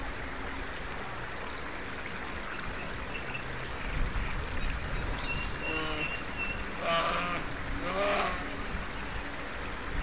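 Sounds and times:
short animal calls: 6.8 - 8.5.

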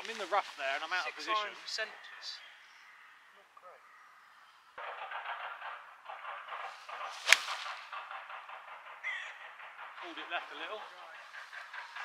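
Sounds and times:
steady rustling: 5.2 - 12.0
golf club striking ball: 7.0 - 7.9.

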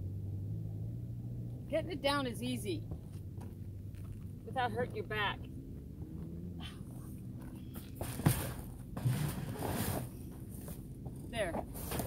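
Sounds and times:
tote scraping and rustling: 8.0 - 10.8.

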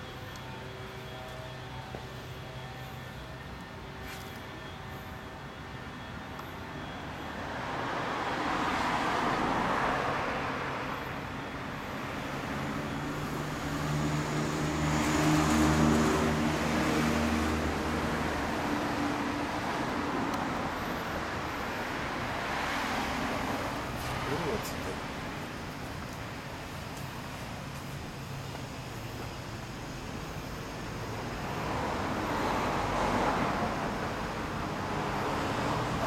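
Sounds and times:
steady engine hum: 0.0 - 36.0
vehicles passing by: 0.0 - 36.0.

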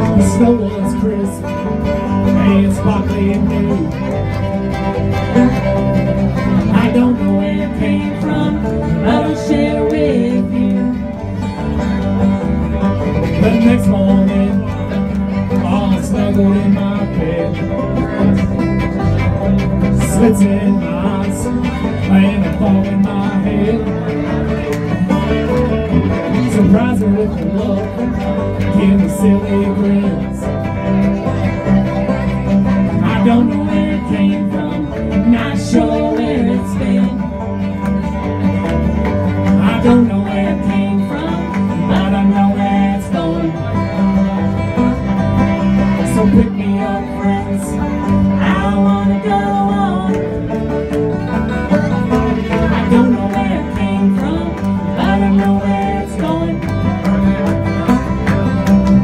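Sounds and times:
acoustic guitar: 0.0 - 59.0
banjo: 0.0 - 59.0
electric bass: 0.0 - 59.0
fiddle: 0.0 - 59.0.

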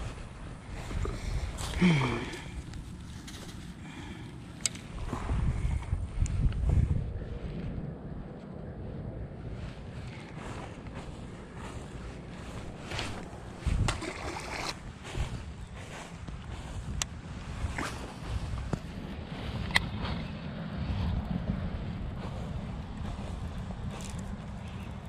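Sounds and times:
wind rumbling on microphone: 0.0 - 25.0
fish splashing into water: 13.9 - 14.8.

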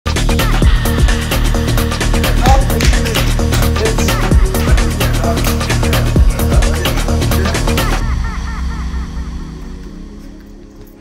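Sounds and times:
held low synth notes: 1.1 - 11.0.

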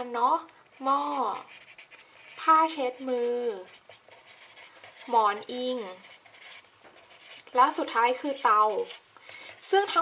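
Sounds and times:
woman speaking: 0.0 - 1.6, 2.3 - 3.8, 4.9 - 6.2, 7.5 - 10.0
marker pen scratching on paper: 0.0 - 10.0.

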